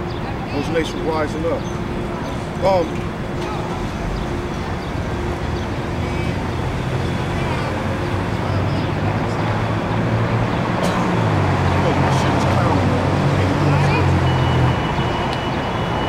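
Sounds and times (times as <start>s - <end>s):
faint voices: 0.0s - 16.0s
street traffic: 0.0s - 16.0s
vehicle engine humming: 0.0s - 16.0s.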